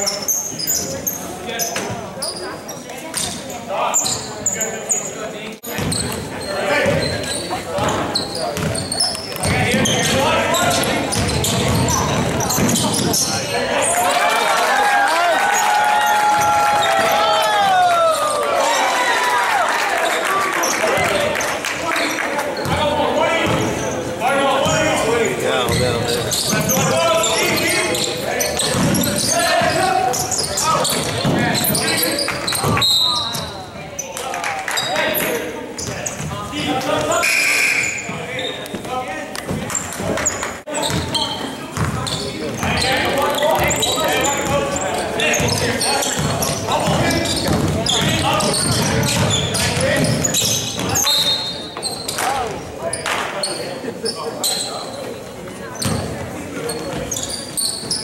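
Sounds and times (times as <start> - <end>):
basketball bouncing on hardwood: 8.6 - 8.8.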